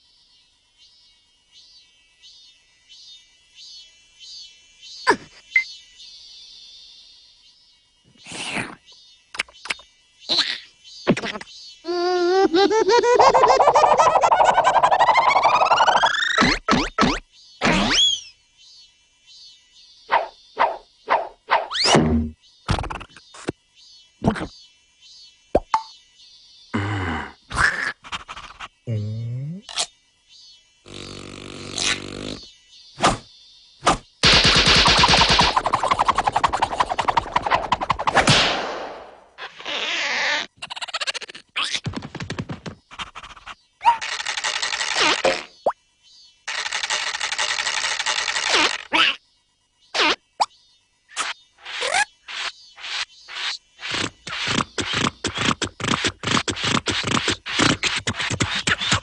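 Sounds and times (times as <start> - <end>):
cartoon gibberish vocal sounds: 10.3 - 18.0, 27.2 - 29.7, 40.6 - 41.9, 48.5 - 49.2
cartoon short pops: 20.1 - 23.2, 50.0 - 50.2
cartoon straw drawing: 34.6 - 38.2, 42.8 - 45.6, 46.5 - 49.2, 51.1 - 59.0.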